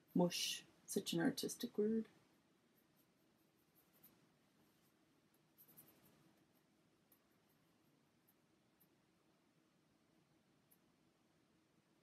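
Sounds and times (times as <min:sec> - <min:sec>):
paintbrush scratching on wood: 0:02.6 - 0:09.0.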